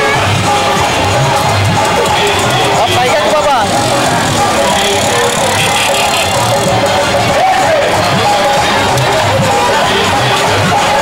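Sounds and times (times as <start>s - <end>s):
loud background din: 0.0s - 11.0s
music: 0.0s - 11.0s
people's voices: 0.0s - 11.0s.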